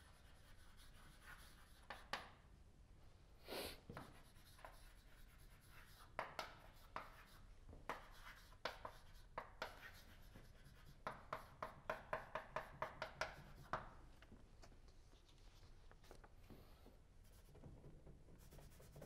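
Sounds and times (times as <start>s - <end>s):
chalk writing on a blackboard: 0.0s - 2.3s, 3.9s - 14.0s, 17.2s - 17.6s, 18.4s - 19.0s.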